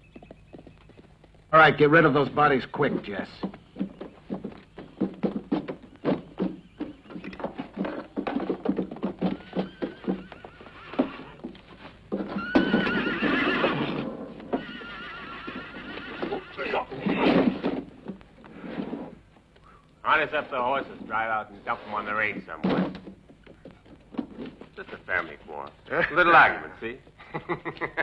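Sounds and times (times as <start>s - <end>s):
horse hooves clopping: 0.0s - 28.0s
horse neighing: 9.1s - 11.5s, 12.2s - 17.6s.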